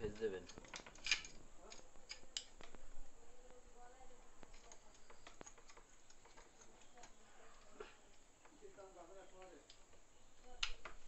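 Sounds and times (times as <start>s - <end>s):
plastic clicks and ticks: 0.1s - 2.8s, 4.4s - 8.6s, 9.4s - 11.0s.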